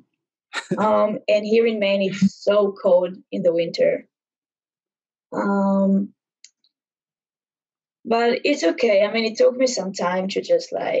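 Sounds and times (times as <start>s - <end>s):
person saying um: 0.6s - 1.2s.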